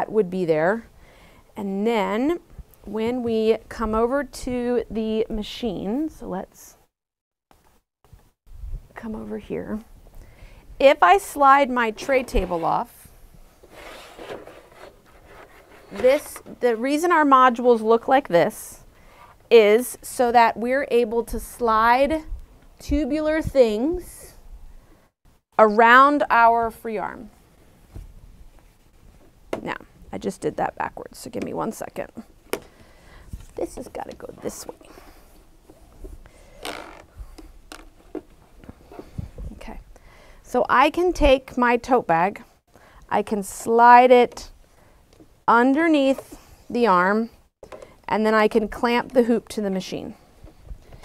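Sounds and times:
plastic rubbing and scraping: 12.0s - 16.8s.

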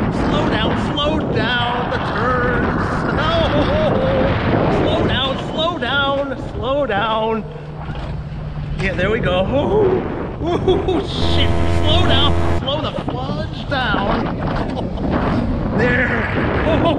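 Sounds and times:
wind rushing over microphone: 0.0s - 16.9s.

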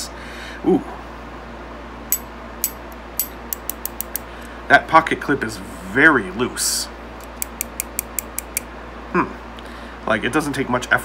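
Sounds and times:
knife pocket clip clicking: 2.6s - 4.2s, 7.2s - 8.6s.

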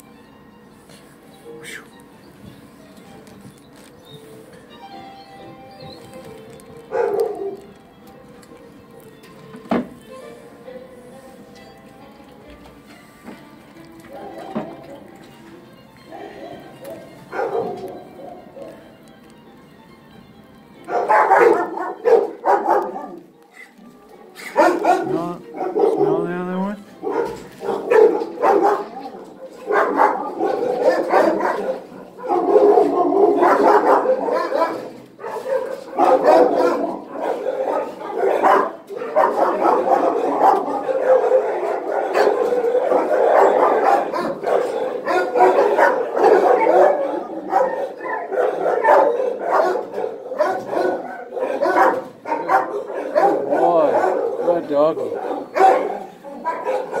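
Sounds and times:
dogs barking and yelping: 5.8s - 7.8s, 14.0s - 15.3s, 16.0s - 19.0s, 20.8s - 26.2s, 26.9s - 57.0s.

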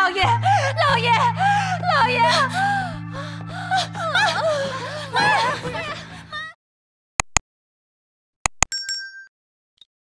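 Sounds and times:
low drone background music: 0.0s - 6.6s
woman gasping and crying: 0.1s - 6.6s.

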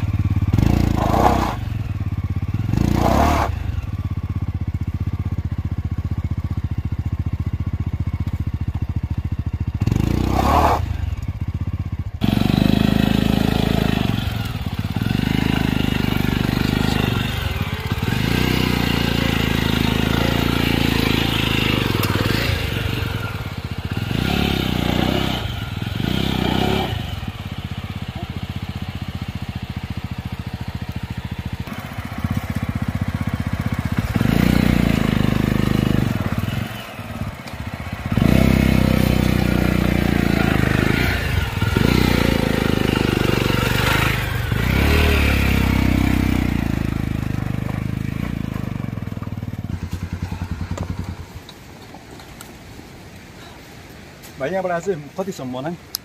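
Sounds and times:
motorcycle engine pulling at low speed: 0.0s - 54.2s.

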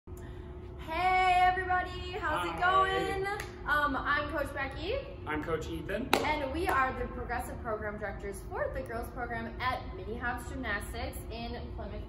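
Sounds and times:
woman calling a sing-song greeting: 0.9s - 3.4s.

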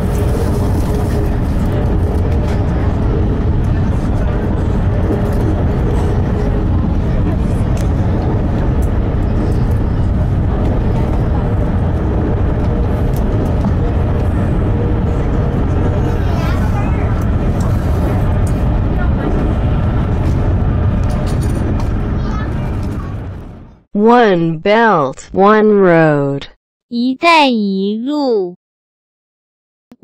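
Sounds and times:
train rumble inside carriage: 0.0s - 23.8s.

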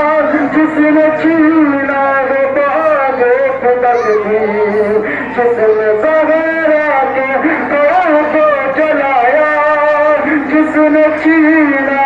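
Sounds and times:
man chanting verse: 0.0s - 12.0s.

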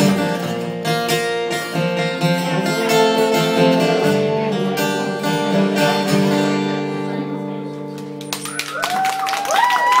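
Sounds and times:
acoustic guitar chord ringing: 0.0s - 8.3s
audience clapping and whooping: 8.2s - 10.0s.

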